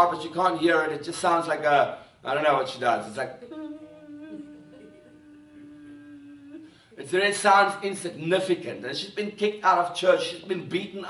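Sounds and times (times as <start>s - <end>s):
man humming a held note: 3.4s - 7.0s.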